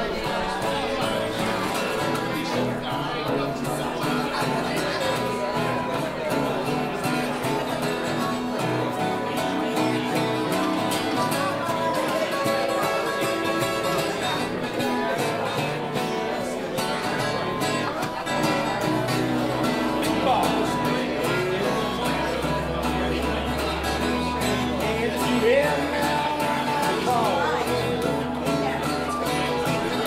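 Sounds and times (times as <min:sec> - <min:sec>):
guitar playing: 0:00.0 - 0:30.0
live band playing blues: 0:00.0 - 0:30.0.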